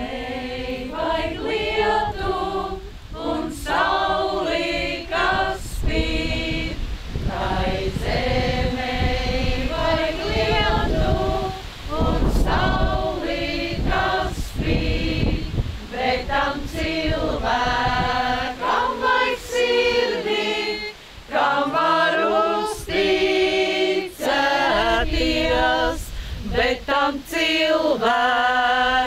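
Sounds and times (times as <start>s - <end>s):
women singing without accompaniment: 0.0s - 29.0s.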